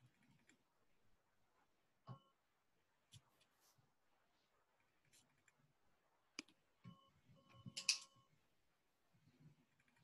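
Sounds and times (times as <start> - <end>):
faint steady tone: 0.0 - 10.0.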